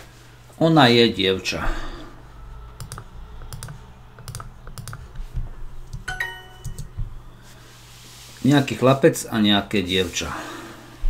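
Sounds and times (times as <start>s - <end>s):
computer mouse clicks: 2.8s - 7.0s
bright app chime: 6.1s - 7.0s.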